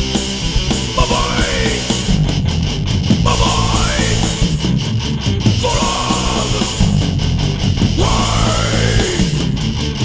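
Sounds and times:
hardcore band with heavy guitars: 0:00.0 - 0:10.0.

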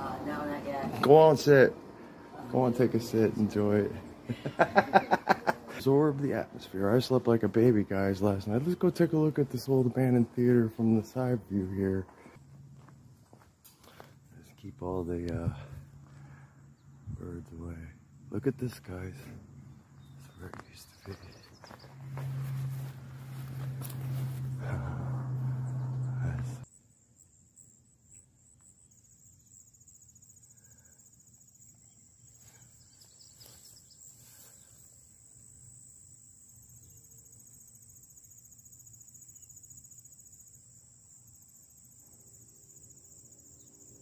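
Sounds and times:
insects chirring: 0:00.0 - 0:44.0
loud low hum with noise: 0:21.9 - 0:26.6.

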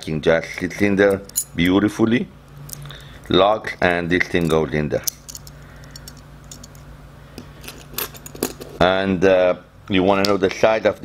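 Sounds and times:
steady low hum: 0:00.0 - 0:11.0
small metal parts clicking: 0:04.3 - 0:06.8.

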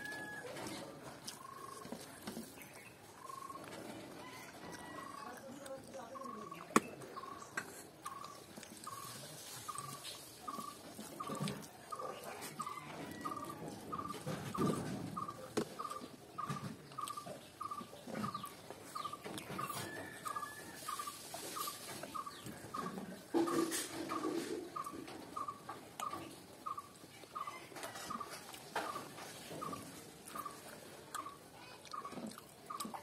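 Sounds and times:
chewing: 0:00.0 - 0:33.0.

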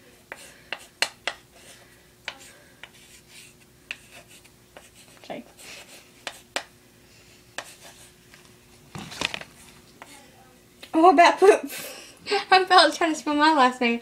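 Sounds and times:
faint steady hum: 0:00.0 - 0:14.0
marker scratching on paper: 0:00.3 - 0:06.6, 0:07.6 - 0:08.1.

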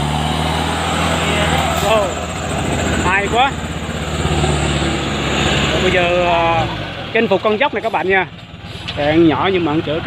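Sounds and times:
truck engine running: 0:00.0 - 0:10.0.

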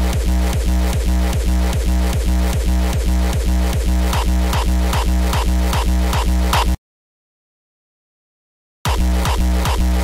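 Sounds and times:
distorted kick drum looping: 0:00.0 - 0:06.8, 0:08.9 - 0:10.0.

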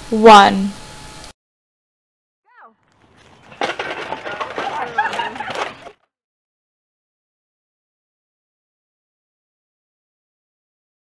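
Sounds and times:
people yelling: 0:03.5 - 0:06.0.

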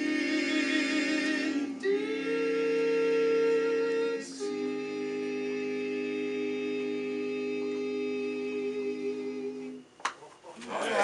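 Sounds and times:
male quartet singing a cappella: 0:00.0 - 0:09.8.

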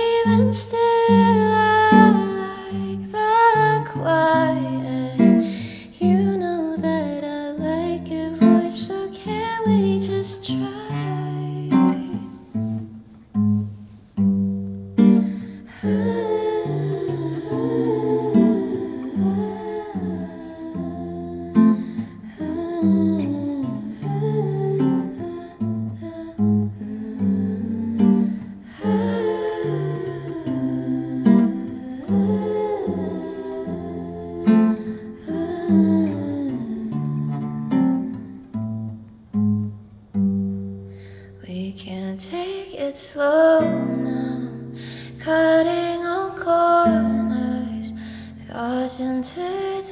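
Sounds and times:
person humming a melody: 0:00.0 - 0:12.5, 0:15.7 - 0:38.4
acoustic guitar accompaniment: 0:00.0 - 0:49.9.

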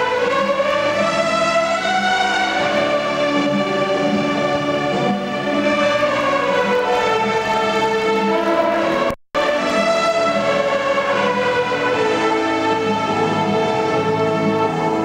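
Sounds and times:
group of violins playing: 0:00.0 - 0:15.0.

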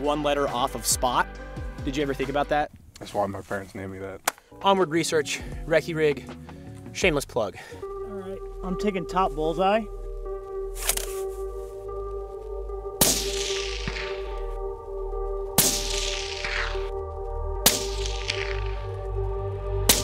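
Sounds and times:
suppressed rifle shots with echo: 0:13.0 - 0:14.4, 0:15.6 - 0:16.8, 0:17.6 - 0:18.8.

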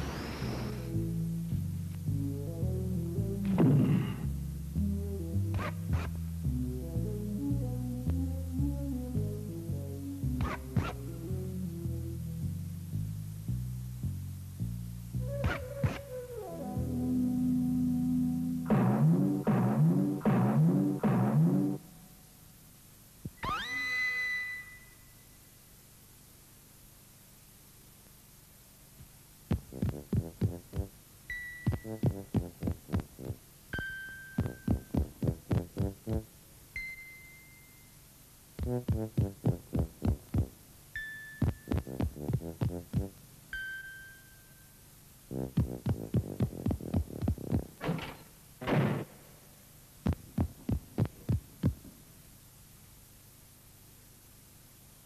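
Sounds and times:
cartoon dentist's drill whine: 0:00.0 - 0:01.0, 0:23.4 - 0:25.0.

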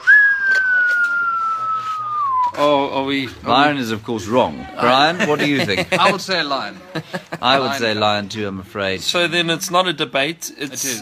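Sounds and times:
person whistling a sliding note: 0:00.0 - 0:02.7.

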